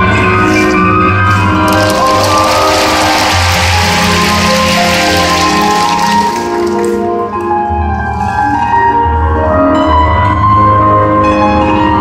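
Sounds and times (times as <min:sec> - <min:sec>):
music over arena loudspeakers: 0:00.0 - 0:12.0
audience applause: 0:01.6 - 0:07.3.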